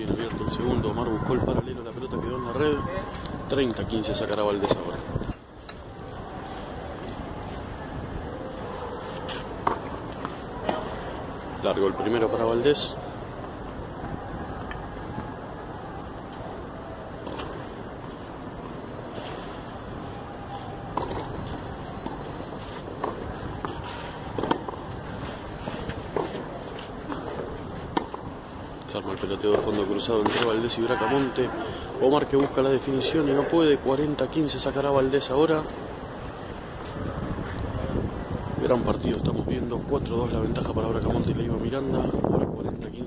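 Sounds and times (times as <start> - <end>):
wind: 0.0 - 43.0
tennis racket hitting ball: 22.8 - 28.3.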